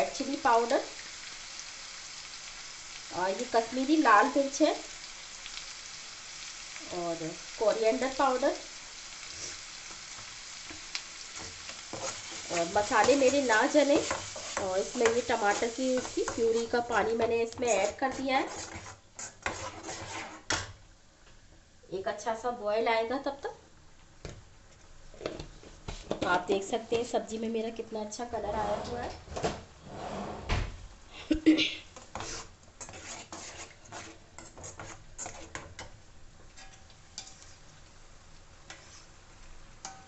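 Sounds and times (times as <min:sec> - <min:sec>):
oil sizzling: 0:00.0 - 0:21.0, 0:30.9 - 0:40.0
faint background hiss: 0:00.0 - 0:40.0
ladle stirring thick gravy: 0:10.7 - 0:20.7, 0:32.0 - 0:37.6
metal spoon clinking on iron pan: 0:34.4 - 0:37.5.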